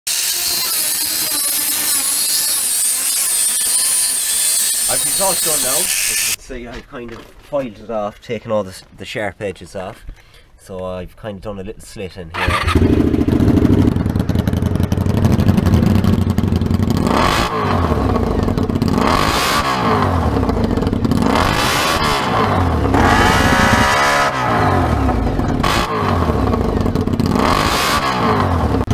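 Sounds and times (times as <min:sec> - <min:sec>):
angle grinder cutting metal pipe: 0:00.1 - 0:06.4, 0:21.2 - 0:26.5
engine throttle blips: 0:12.3 - 0:28.9
loud motorcycle engine idling: 0:12.4 - 0:19.1, 0:20.2 - 0:21.4, 0:24.7 - 0:27.6.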